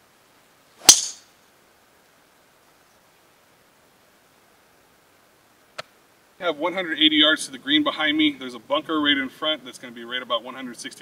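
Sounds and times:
golf club striking ball: 0.8s - 1.3s.

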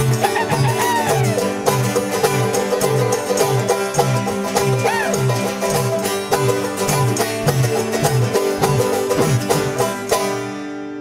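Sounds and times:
bluegrass banjo and guitar music: 0.0s - 11.0s
low bass notes: 0.0s - 11.0s.

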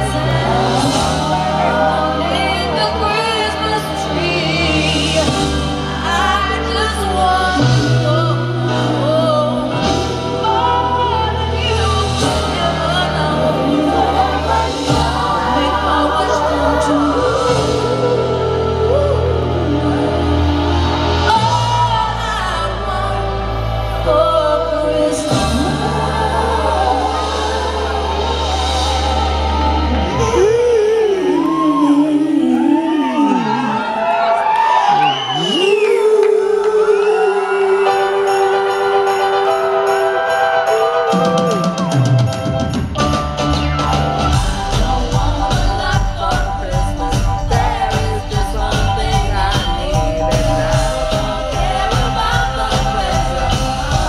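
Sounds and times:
woman singing into microphone: 0.0s - 28.2s, 30.0s - 34.4s, 35.3s - 39.7s, 44.7s - 54.0s
sustained backing chords: 0.0s - 31.7s, 38.0s - 54.0s.

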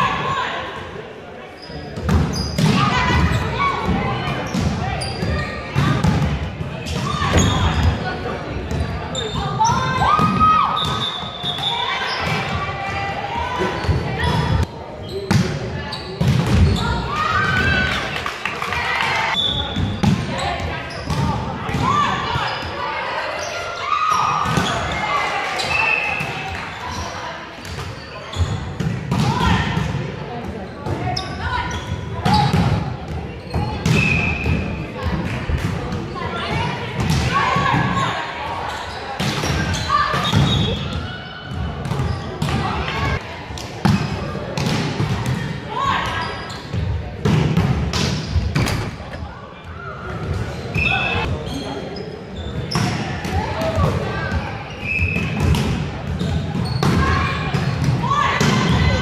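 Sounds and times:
players calling and shouting: 0.0s - 59.0s.

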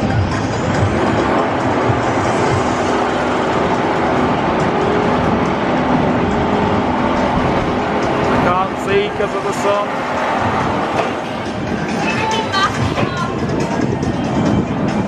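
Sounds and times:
music: 0.0s - 15.0s
roller coaster on steel track: 0.0s - 15.0s.

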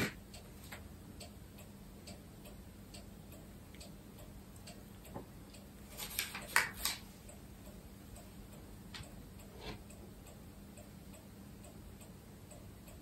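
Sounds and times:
clock ticking: 0.0s - 13.0s.

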